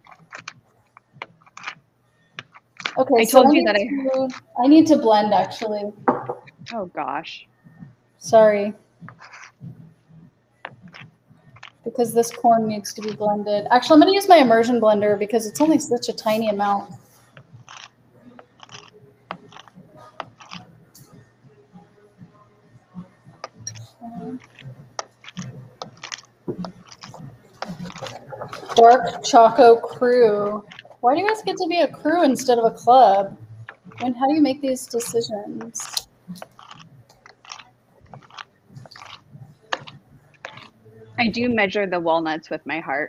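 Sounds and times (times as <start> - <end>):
containers scraping: 0.0 - 1.8, 2.4 - 6.8, 9.1 - 9.6, 10.7 - 14.0, 15.4 - 20.7, 23.4 - 41.4.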